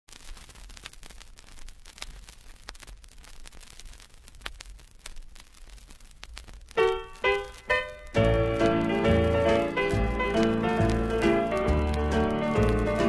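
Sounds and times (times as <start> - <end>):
vinyl clicks and crackle: 0.1 - 13.0
low hum and hiss: 4.1 - 13.0.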